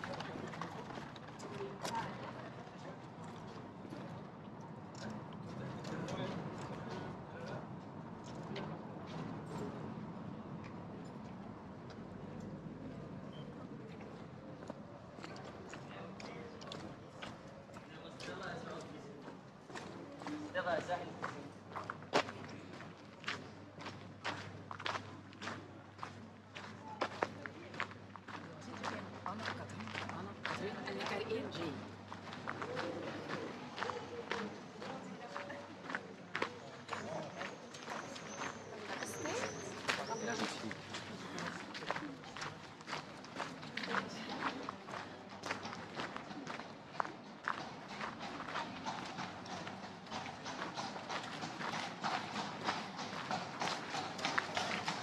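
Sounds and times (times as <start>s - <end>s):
people talking: 0.0s - 4.2s, 5.0s - 7.7s, 24.3s - 49.8s
horse hooves on pavement: 23.4s - 55.0s.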